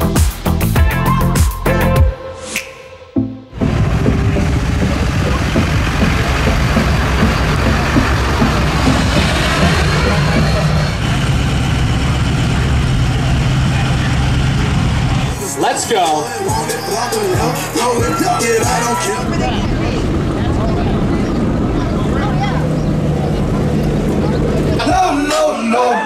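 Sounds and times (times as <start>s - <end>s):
music playing: 0.0s - 11.2s, 15.2s - 26.0s
vehicle noise: 3.5s - 26.0s
mix of voices: 4.2s - 26.0s.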